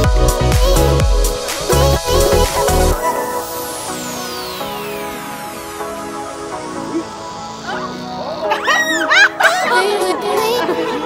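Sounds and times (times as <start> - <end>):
upbeat background music: 0.0 - 11.0
woman squealing: 7.7 - 9.9.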